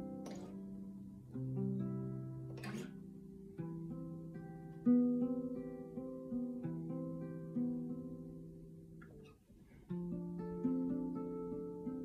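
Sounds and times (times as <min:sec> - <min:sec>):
acoustic guitar picking notes: 0:00.0 - 0:12.0.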